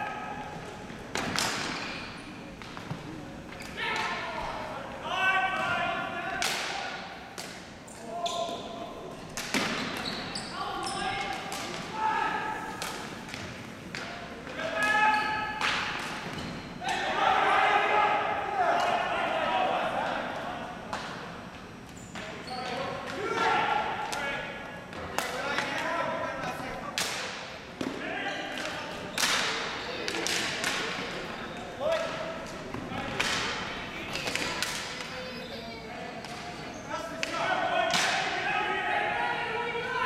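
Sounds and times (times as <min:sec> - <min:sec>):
hockey sticks and ball clacking: 0:01.1 - 0:04.6, 0:06.4 - 0:17.1, 0:24.9 - 0:26.0, 0:26.9 - 0:35.3, 0:36.2 - 0:38.4
men shouting in a gymnasium: 0:03.8 - 0:07.2, 0:10.5 - 0:12.8, 0:16.8 - 0:20.8, 0:23.1 - 0:24.6, 0:37.1 - 0:40.0.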